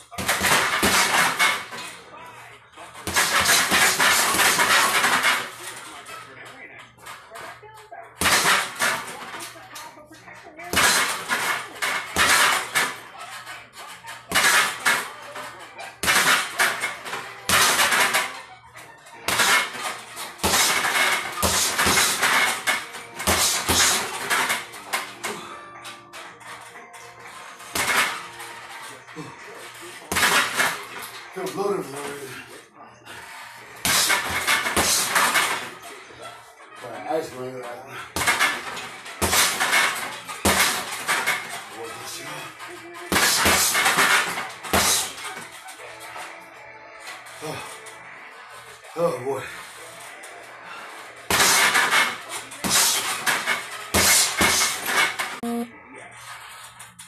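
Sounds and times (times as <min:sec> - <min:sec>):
background music: 0:13.7 - 0:55.7
background voice: 0:46.0 - 0:47.8.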